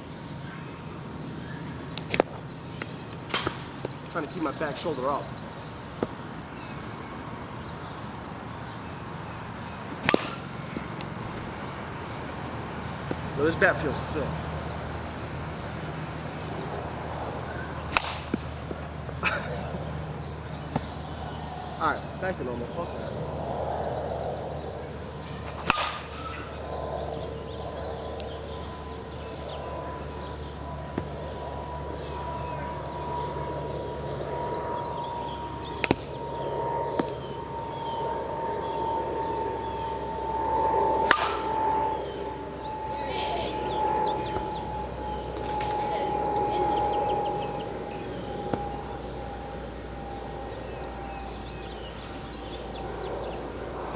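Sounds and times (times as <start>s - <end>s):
birds chirping: 0.0s - 53.9s
bat hitting ball crack: 3.3s - 3.7s, 10.0s - 10.5s, 17.9s - 18.5s, 25.5s - 26.5s, 41.0s - 41.5s
steady high-pitched drone: 11.9s - 53.9s.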